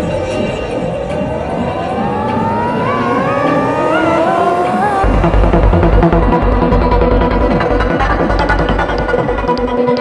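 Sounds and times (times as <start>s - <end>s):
synth sweep rising in pitch: 0.0s - 7.6s
heavy kick drum and bass: 5.0s - 9.7s.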